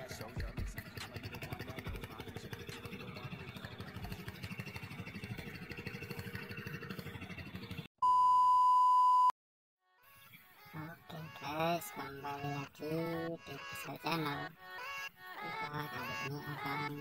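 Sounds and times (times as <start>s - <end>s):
rapidly pulsing drone: 0.0s - 7.9s
electronic beep tone: 8.0s - 9.3s.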